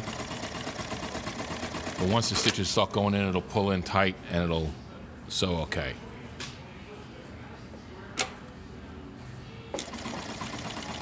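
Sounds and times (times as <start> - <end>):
sewing machine stitching: 9.8 - 11.0.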